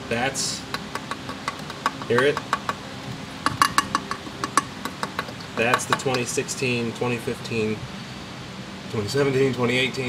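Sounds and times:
hand tapping thin metal: 0:00.7 - 0:02.8, 0:03.4 - 0:06.4.

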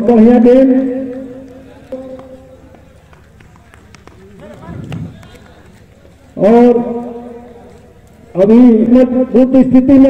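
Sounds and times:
faint voices: 0:01.2 - 0:08.6.

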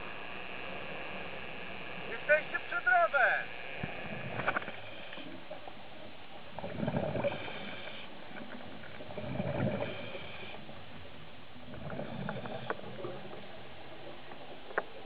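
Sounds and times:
exhaled bubbles rumbling: 0:06.4 - 0:07.6
diver breathing through regulator: 0:06.8 - 0:08.2, 0:09.1 - 0:10.7, 0:11.8 - 0:13.4.

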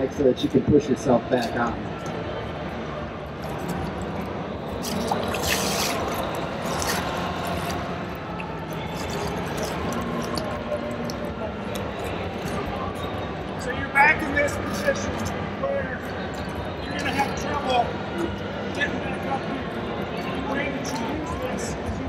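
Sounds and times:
exhibition hall noise: 0:00.0 - 0:22.0
water splashing and sloshing: 0:03.2 - 0:13.7.

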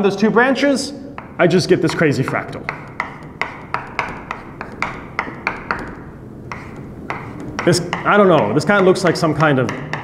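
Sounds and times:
chalk tapping on blackboard: 0:01.1 - 0:10.0.

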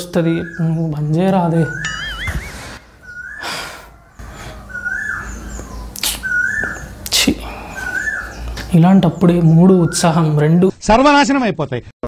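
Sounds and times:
breathy sounds: 0:02.5 - 0:04.8, 0:07.3 - 0:08.6.

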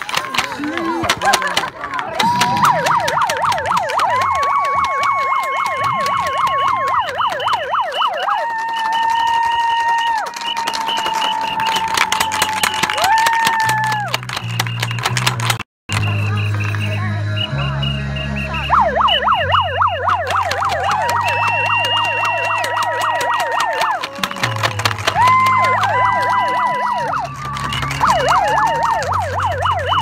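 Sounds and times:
emergency vehicle siren: 0:02.2 - 0:14.1, 0:16.0 - 0:30.0.

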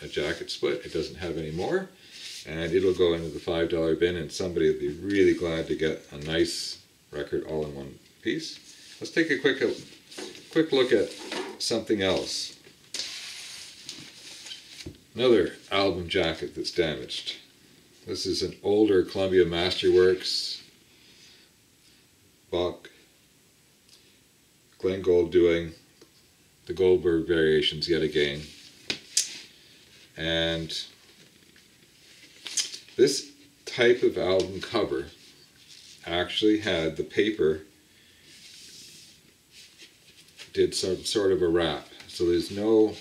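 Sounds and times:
paper rustle and scrape: 0:08.7 - 0:12.3, 0:12.9 - 0:14.9, 0:34.6 - 0:36.0, 0:38.3 - 0:40.6.

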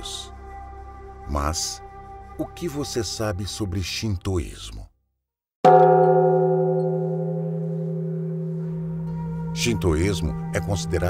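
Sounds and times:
struck metal bell ringing: 0:05.7 - 0:09.7.

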